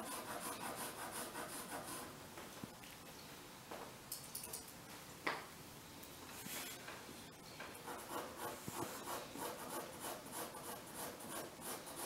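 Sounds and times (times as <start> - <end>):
drawing tool scratching on paper: 0.0 - 2.1, 7.8 - 12.0.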